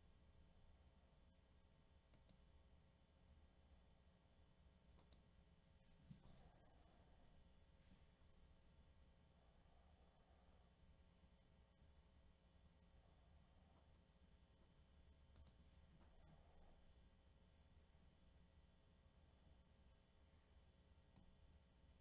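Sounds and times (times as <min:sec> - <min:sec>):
faint clicks: 0:02.1 - 0:02.4, 0:05.0 - 0:05.3, 0:15.3 - 0:16.4, 0:21.1 - 0:21.4.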